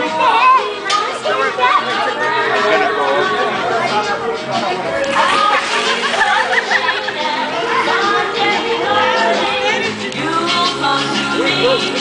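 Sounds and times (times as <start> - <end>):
overlapping chatter with children: 0.0 - 12.0.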